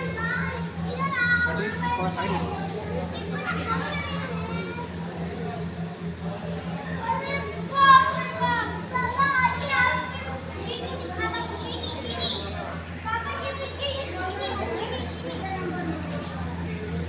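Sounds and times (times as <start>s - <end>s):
children calling and chattering: 0.0s - 17.0s
steady low hum: 0.0s - 17.0s.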